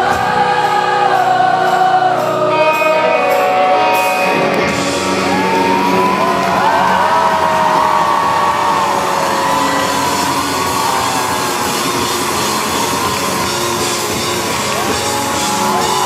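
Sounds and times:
pop-rock band playing: 0.0 - 16.0
crowd cheering and whooping: 4.3 - 16.0.

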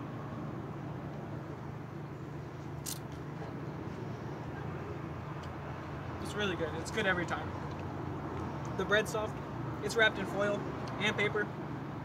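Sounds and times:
street traffic hum: 0.0 - 12.0.

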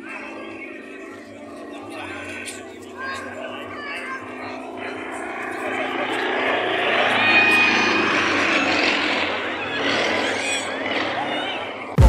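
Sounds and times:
radial aircraft engine: 0.0 - 12.0
voices: 0.0 - 12.0.

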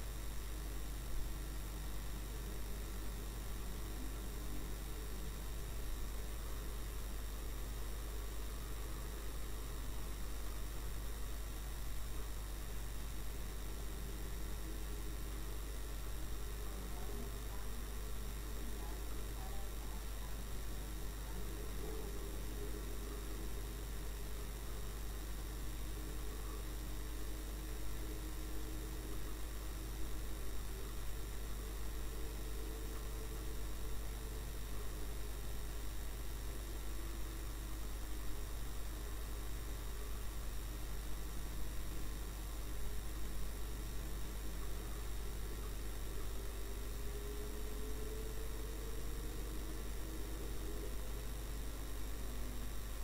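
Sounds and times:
steady low hum and hiss: 0.0 - 53.0.

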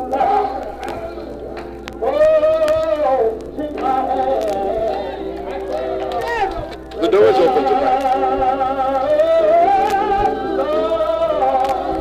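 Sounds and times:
voices singing slow gospel hymn: 0.0 - 12.0.

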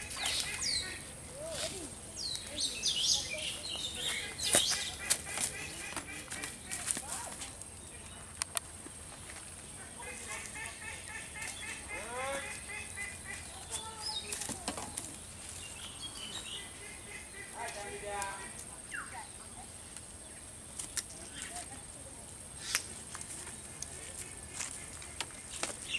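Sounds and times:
birds chirping: 0.0 - 25.9.

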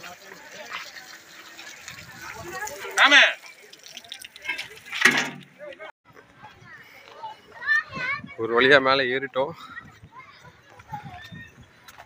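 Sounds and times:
faint chatter of people: 0.0 - 12.0.

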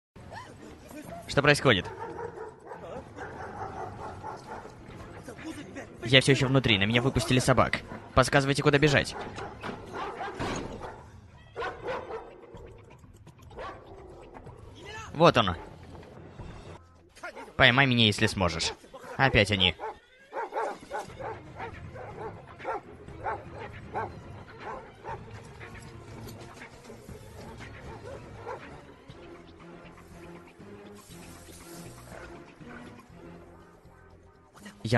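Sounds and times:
film music: 0.2 - 34.9
dogs barking: 1.0 - 5.3, 6.6 - 14.8, 15.4 - 16.2, 17.2 - 17.7, 18.4 - 29.4, 30.1 - 33.8.

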